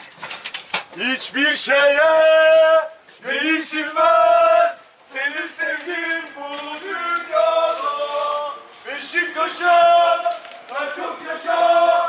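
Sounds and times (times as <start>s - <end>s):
football fans singing a chant: 1.5s - 12.0s.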